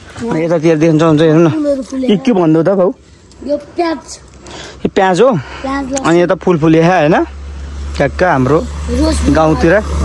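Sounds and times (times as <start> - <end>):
people talking: 8.0 - 10.0.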